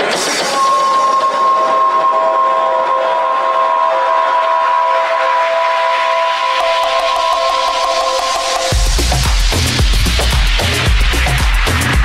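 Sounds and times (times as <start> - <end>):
drum beat: 7.2 - 12.0.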